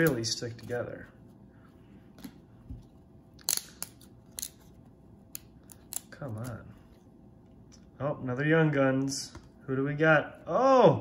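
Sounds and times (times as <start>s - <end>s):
cards clicking and snapping: 3.3s - 6.6s.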